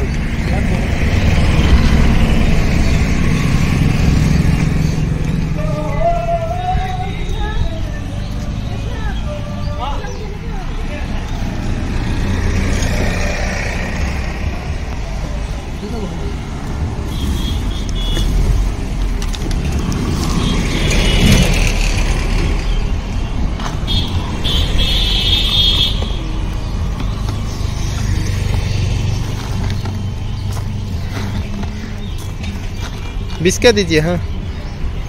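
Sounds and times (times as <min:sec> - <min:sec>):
passing vehicle engines: 0:00.0 - 0:35.0
steady engine hum: 0:00.0 - 0:35.0.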